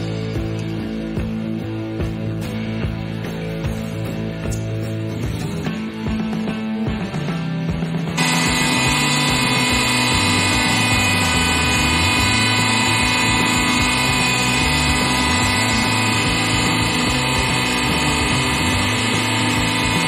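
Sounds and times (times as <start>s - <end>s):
hydraulic press pump humming: 8.1s - 20.0s
low drone: 8.2s - 20.0s.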